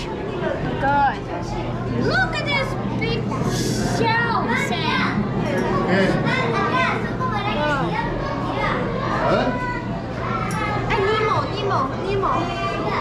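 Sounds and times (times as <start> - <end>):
children chattering and calling out: 0.0 - 13.0.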